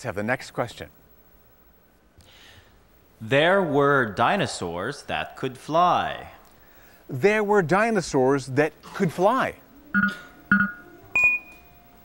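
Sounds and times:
short electronic beeps: 10.0 - 11.7.

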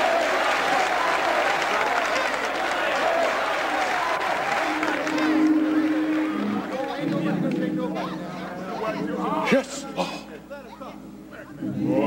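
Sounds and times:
audience applauding: 0.0 - 8.1
audience calling out: 0.0 - 12.0
held organ note: 4.5 - 10.0.

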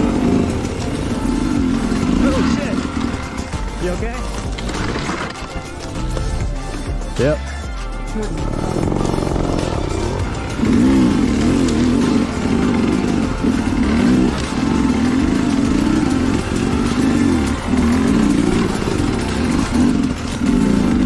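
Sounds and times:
dirt bike engine revving: 0.0 - 7.3, 8.3 - 21.0.

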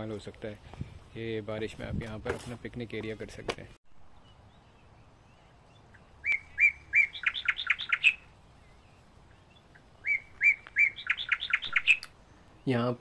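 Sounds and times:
songbird singing: 3.9 - 13.0.

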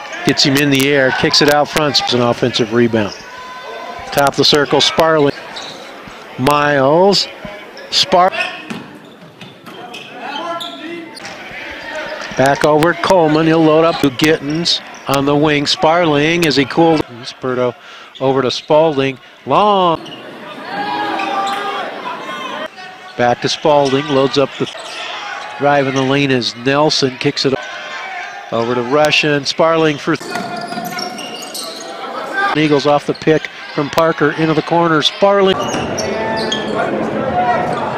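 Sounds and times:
basketball play on court: 0.0 - 37.9
crowd noise in a gym: 0.0 - 37.9.

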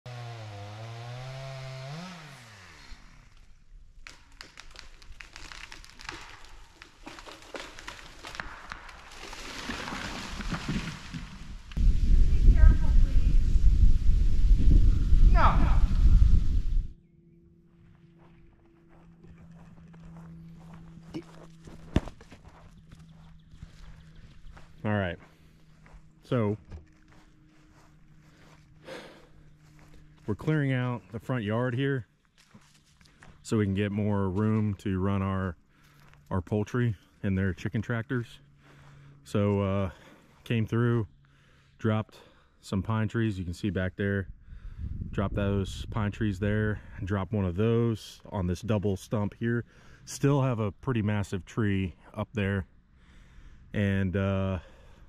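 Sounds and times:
chainsaw running: 0.1 - 3.7
branches breaking: 1.0 - 12.0
tree cracking and snapping: 2.6 - 11.8.

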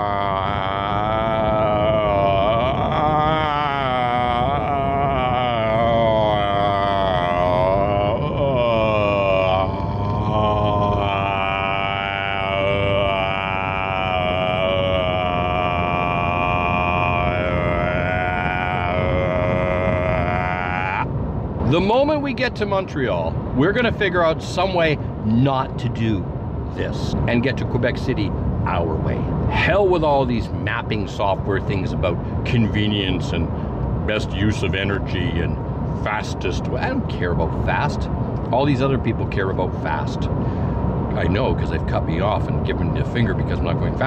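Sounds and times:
road noise inside vehicle cabin: 0.0 - 44.0.

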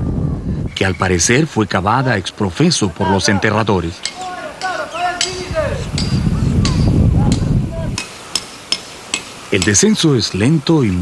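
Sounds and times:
low rumbling noise: 0.0 - 2.0
short arching calls: 2.0 - 9.8.

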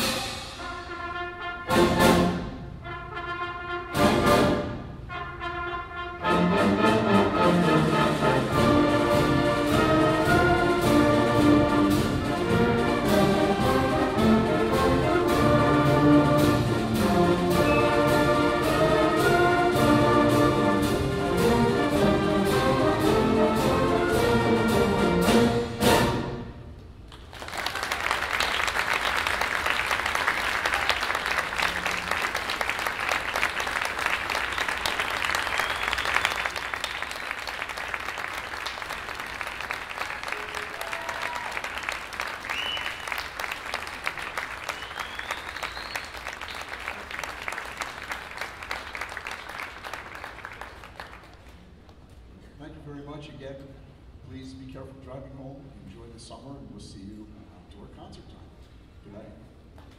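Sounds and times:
audience applauding: 27.1 - 51.8.

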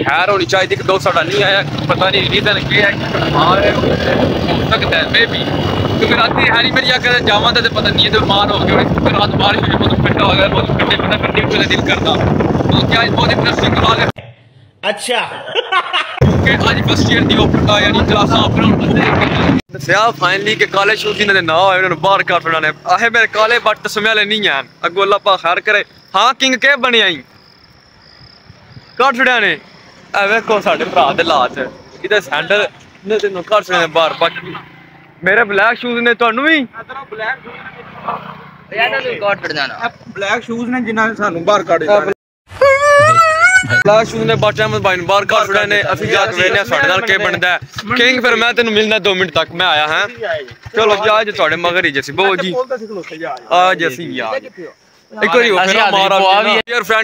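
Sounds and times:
wind on microphone: 3.4 - 14.2, 16.2 - 19.6
man's voice: 16.2 - 19.6
high-pitched insect trill: 21.0 - 35.0, 42.6 - 57.0
man talking: 43.7 - 57.0.

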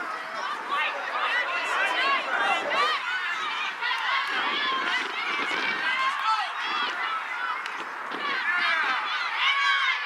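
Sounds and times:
voices calling out and chatting: 0.0 - 10.0.

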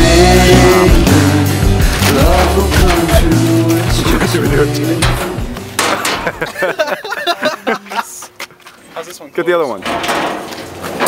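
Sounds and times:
music: 0.0 - 6.8
young men's voices: 0.0 - 8.4
metal dumpster lid banging: 2.1 - 6.5, 9.8 - 11.0.

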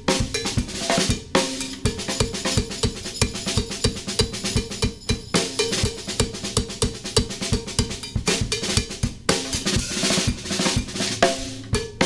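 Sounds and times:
live instrumental band: 0.0 - 6.8, 7.4 - 12.0
drum kit quick beat: 0.0 - 12.0
bell-like percussion: 1.6 - 6.2.

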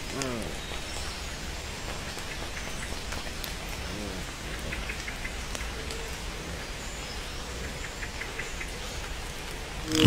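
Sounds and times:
raindrops ticking: 0.0 - 10.0
steady rain hiss: 0.0 - 10.0.

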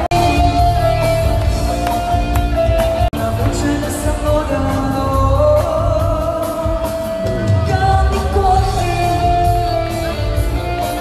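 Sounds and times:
live band music: 0.0 - 11.0
woman singing into microphone: 3.0 - 10.0.

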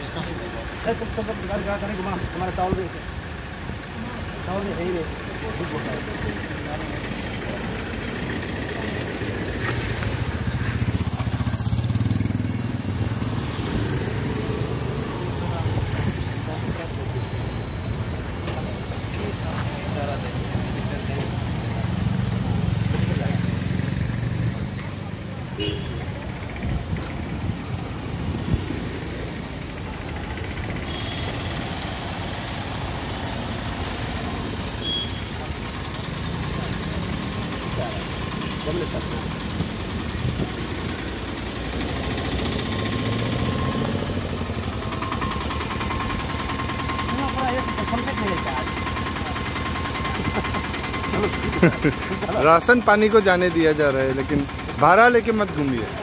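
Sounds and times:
car engines idling: 0.0 - 56.0
street traffic: 0.0 - 56.0.

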